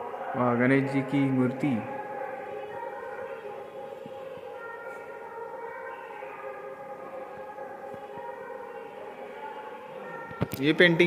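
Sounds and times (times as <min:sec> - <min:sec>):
devotional chanting with held notes: 0:00.0 - 0:11.0.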